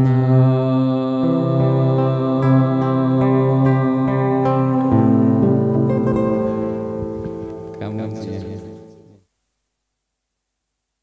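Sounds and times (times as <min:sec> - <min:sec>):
man singing sustained note: 0:00.0 - 0:05.7
acoustic guitar: 0:00.0 - 0:09.3.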